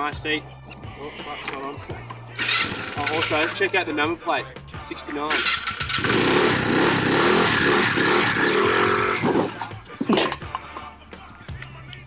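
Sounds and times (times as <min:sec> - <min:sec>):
scooter engine revving: 0:02.4 - 0:03.7, 0:05.3 - 0:09.8.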